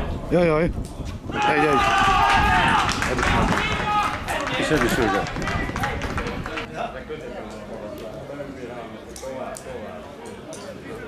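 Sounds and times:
voices shouting: 1.3s - 6.1s.

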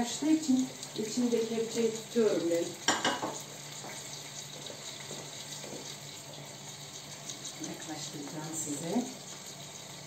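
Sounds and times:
food sizzling in a pot: 0.0s - 10.0s.

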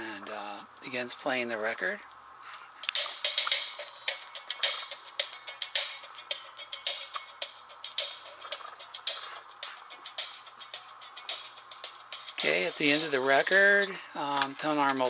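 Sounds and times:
thin trebly record music: 0.0s - 15.0s.

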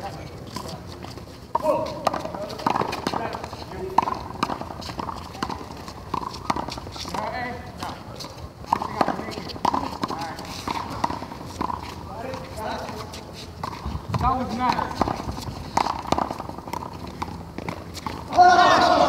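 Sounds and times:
sneakers scuffing court: 0.0s - 19.0s
loud drawn-out yell: 18.3s - 19.0s
players shouting: 18.3s - 19.0s.

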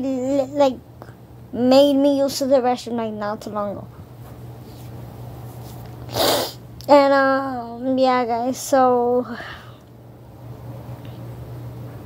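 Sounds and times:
person sneezing: 6.1s - 6.6s.

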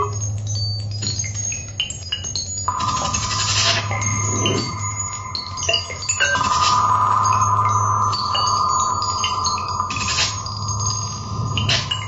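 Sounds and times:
high chime-like tones: 2.7s - 12.0s
low hum: 2.7s - 12.0s
steady mid-pitched electronic tone: 2.7s - 12.0s.

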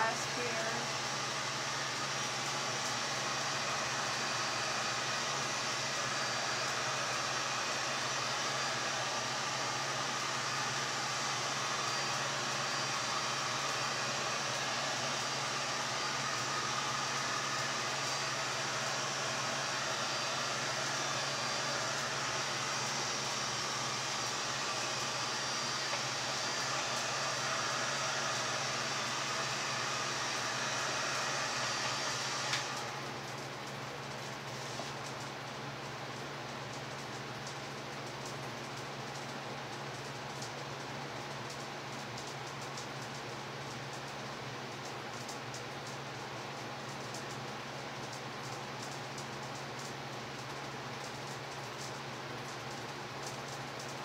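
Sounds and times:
heat gun blowing air: 0.0s - 33.1s.

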